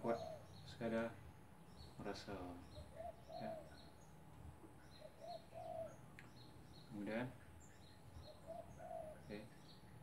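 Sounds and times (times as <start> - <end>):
dove cooing: 0.0 - 0.6, 2.7 - 3.9, 4.9 - 6.1, 8.2 - 9.5
small birds chirping: 0.0 - 10.0.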